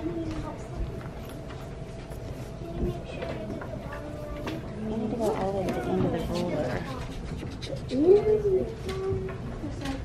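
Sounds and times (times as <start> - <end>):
young children's voices: 0.0 - 10.0.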